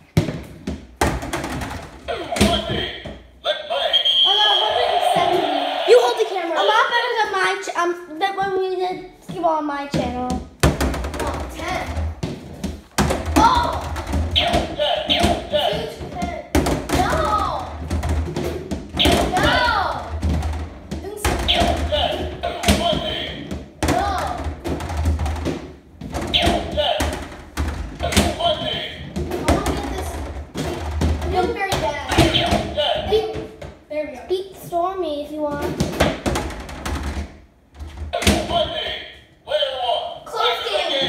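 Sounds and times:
balls rolling on wooden lane: 0.0 - 3.3, 9.3 - 34.0, 35.4 - 39.0
balls thudding into rings: 0.0 - 3.4, 9.3 - 33.9, 34.6 - 39.0.

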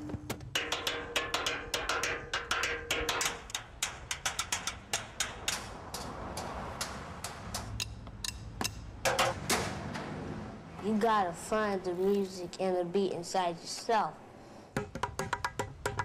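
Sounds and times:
drumsticks hitting metal objects: 0.5 - 9.7, 14.8 - 16.0.

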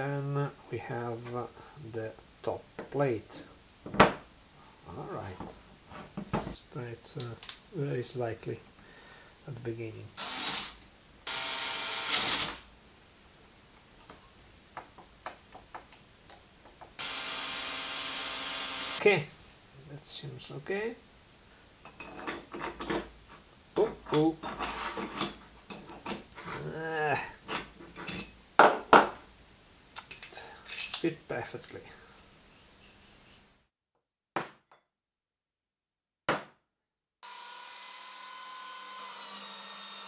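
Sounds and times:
cordless drill driving screws: 10.2 - 12.6, 17.0 - 19.0.

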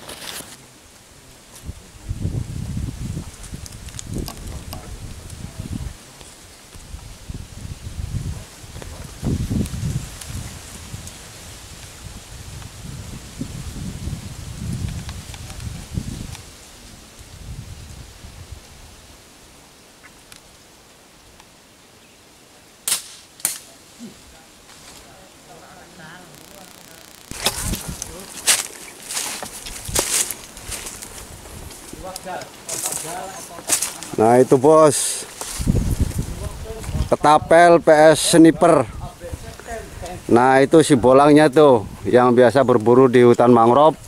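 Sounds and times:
wind rumbling: 1.2 - 19.7, 25.2 - 42.8
microphone handling noise: 1.6 - 6.0, 6.7 - 16.5, 26.1 - 37.4
slingshot shots snapping: 22.8 - 23.7.

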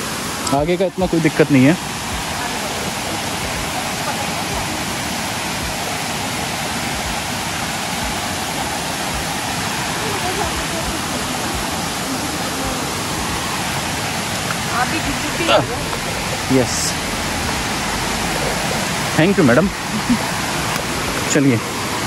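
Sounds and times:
waterfall rushing over rocks: 0.0 - 22.0.

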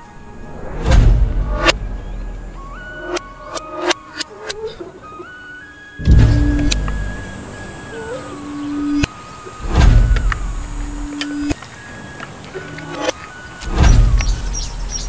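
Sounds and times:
low rumbling surges: 0.0 - 4.2, 6.0 - 9.0, 9.6 - 12.5
synthesized tones stepping in pitch: 0.5 - 11.6
sharp clicks: 6.0 - 7.4, 8.9 - 14.8.

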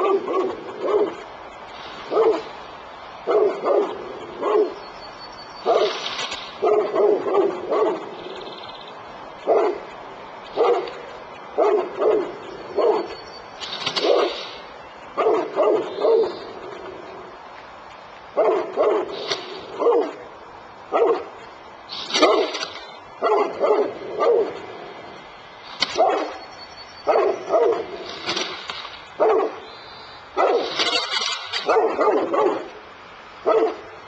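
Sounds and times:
dog barking: 0.0 - 1.3, 2.1 - 2.5, 3.2 - 4.8, 5.6 - 6.0, 6.6 - 8.2, 9.4 - 9.9, 10.5 - 11.0, 11.6 - 13.2, 13.9 - 14.5, 15.2 - 16.6, 18.4 - 20.2, 20.9 - 21.4, 22.0 - 24.6, 25.8 - 26.4, 27.0 - 28.1, 29.2 - 29.6, 30.4 - 32.8, 33.4 - 33.9.

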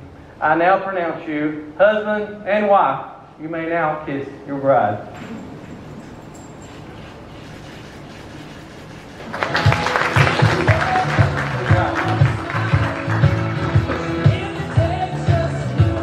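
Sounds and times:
guests applauding: 9.1 - 15.1
song with beat and singer: 9.7 - 16.0.

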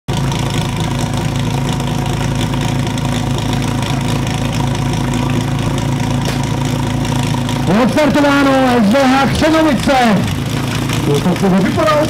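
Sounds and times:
small engine idling: 0.1 - 12.0.

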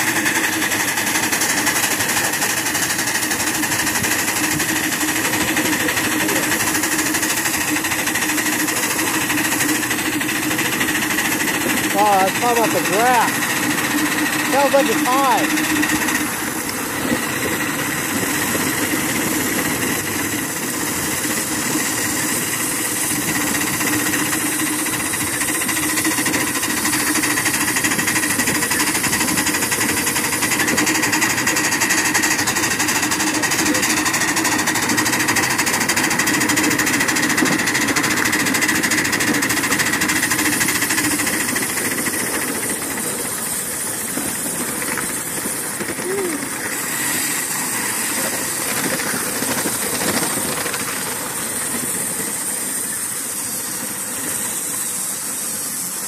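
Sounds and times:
miniature steam locomotive running: 0.0 - 56.0.

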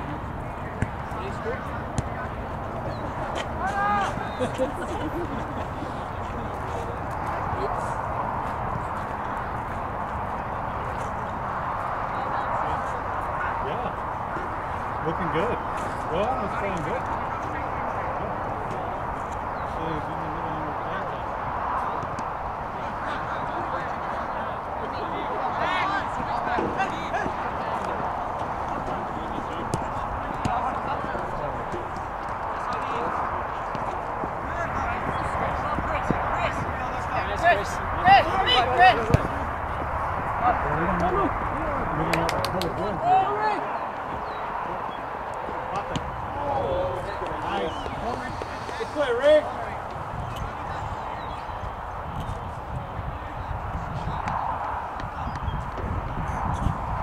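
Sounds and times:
distant people calling out: 0.0 - 8.9, 21.1 - 55.3
distant shouted voices: 0.0 - 16.3, 20.6 - 56.6
steady outdoor hiss: 0.0 - 57.0
steady rushing background noise: 0.0 - 57.0.

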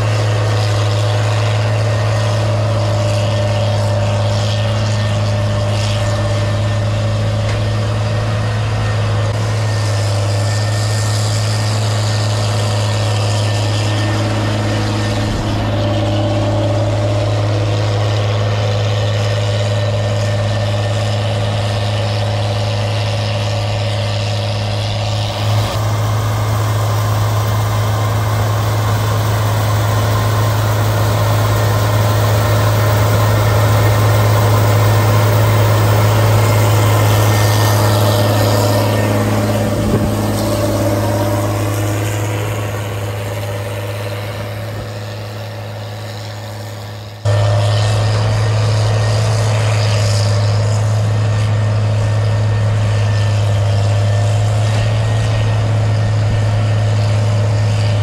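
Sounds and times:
cotton picker engine drone: 0.0 - 58.0.

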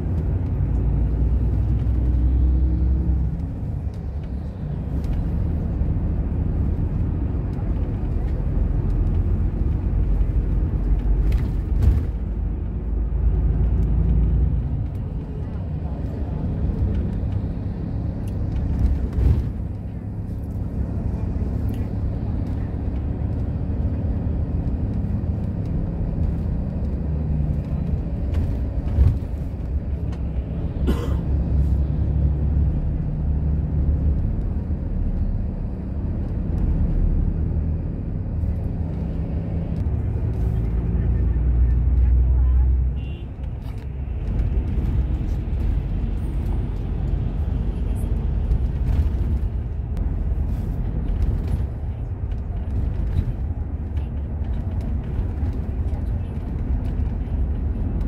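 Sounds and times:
vehicle engine and road noise: 0.0 - 58.0.

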